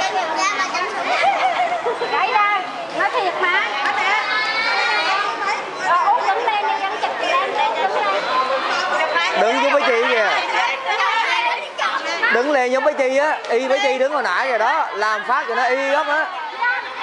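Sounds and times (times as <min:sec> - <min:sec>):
people chattering: 0:00.0 - 0:17.0.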